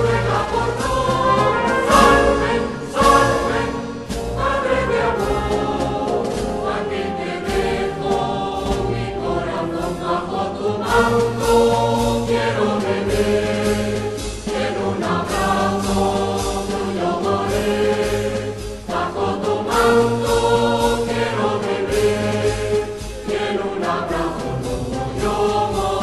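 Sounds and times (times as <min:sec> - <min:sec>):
drum strokes: 0:00.0 - 0:26.0
wind band playing a march: 0:00.0 - 0:26.0.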